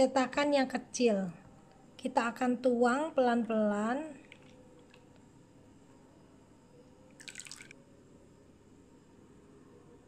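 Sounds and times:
pudding mixture dripping into mould: 7.2 - 7.8.

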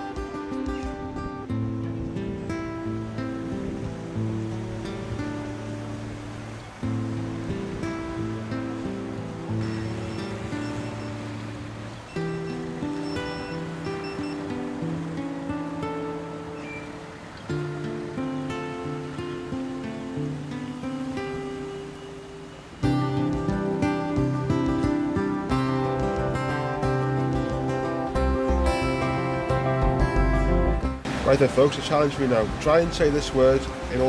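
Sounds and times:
strummed acoustic guitar chords: 0.0 - 34.0.

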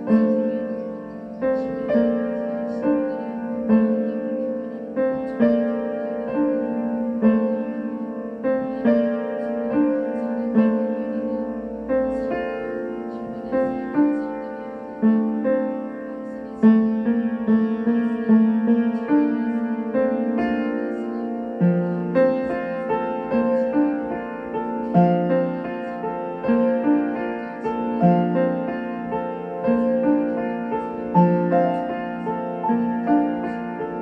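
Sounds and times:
slow piano music: 0.0 - 34.0.

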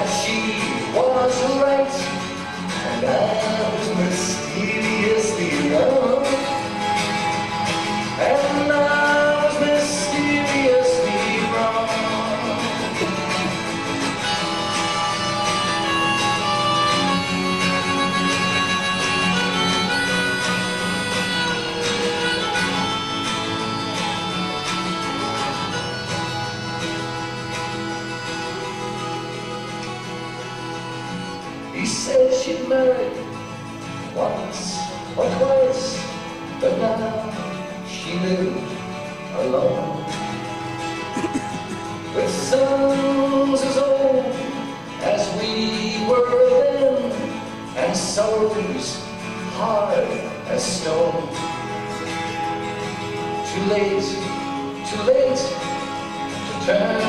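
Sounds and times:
harmonica playing held notes: 0.0 - 35.2, 39.2 - 47.8, 51.1 - 57.0
man singing: 0.0 - 40.4, 41.1 - 57.0
strummed twelve-string guitar: 0.0 - 57.0.

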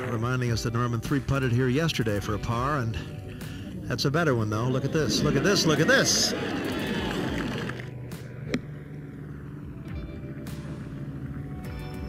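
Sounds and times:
soft background music: 0.0 - 12.0
crowd cheering: 4.8 - 7.9
golf club striking ball: 7.7 - 9.7.

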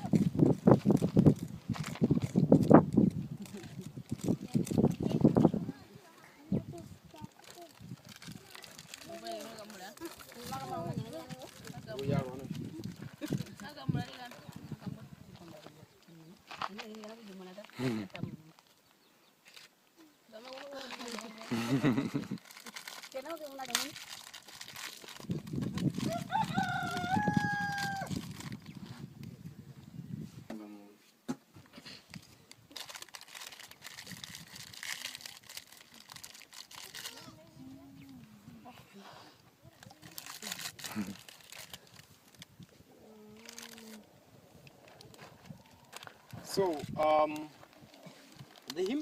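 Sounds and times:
plastic snack packet crinkling: 0.0 - 5.3, 7.1 - 14.6, 20.4 - 27.0, 32.1 - 37.3, 39.8 - 42.5, 43.3 - 44.1, 44.8 - 49.0.

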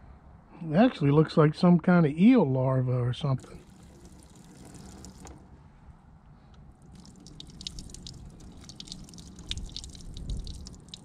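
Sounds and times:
water dripping into hand: 6.8 - 11.0.

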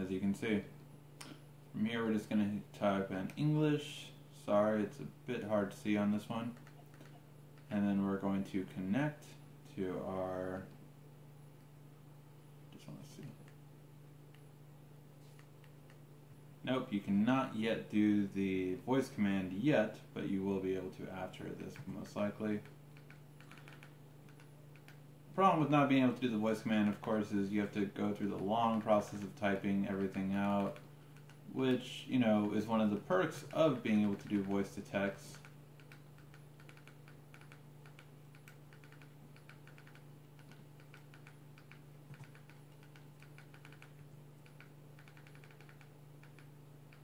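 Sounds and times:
low steady hum: 0.0 - 47.0
remote buttons clicking: 35.3 - 47.0.

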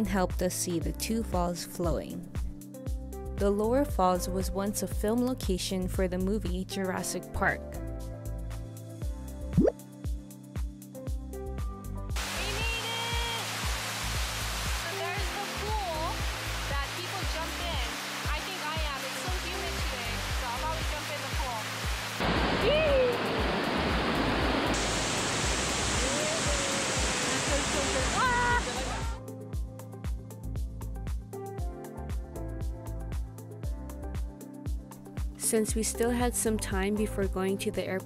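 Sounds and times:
background music with a beat: 2.4 - 3.5, 7.8 - 12.2, 29.2 - 35.4
waterfall rushing: 12.2 - 29.2
person talking: 12.4 - 13.5, 27.4 - 29.2.

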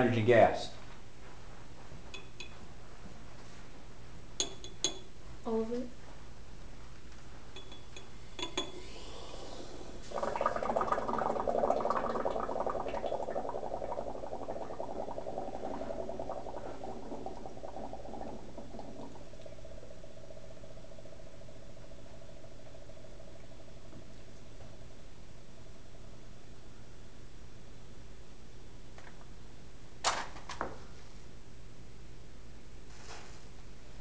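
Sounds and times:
acid fizzing and bubbling: 8.6 - 26.2.

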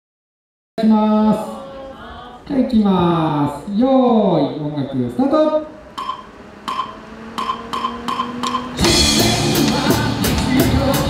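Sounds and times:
faint steady hum: 0.8 - 10.3
ringing count-in clicks: 6.0 - 8.8.

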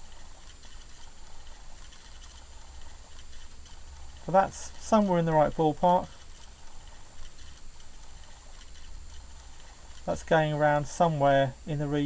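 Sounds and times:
light irregular ticking: 0.0 - 12.0
small motor humming: 0.0 - 12.0.

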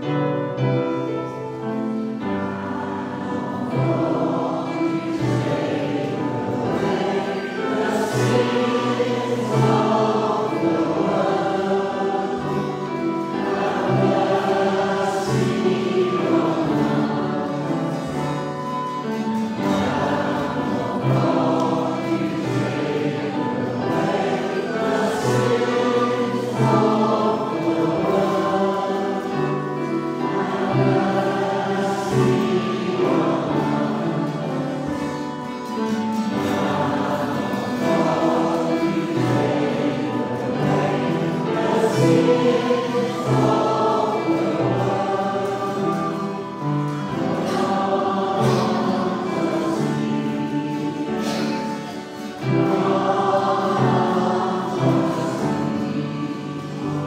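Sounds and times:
choir singing with accompaniment: 0.0 - 57.0.

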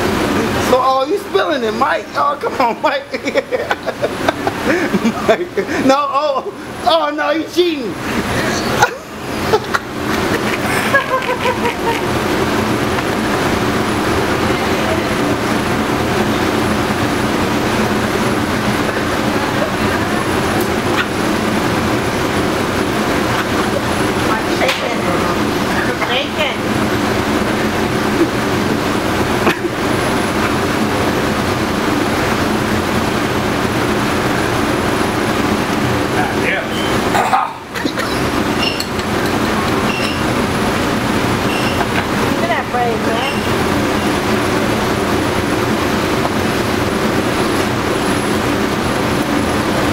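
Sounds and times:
kitchen exhaust fan droning: 0.0 - 49.9.

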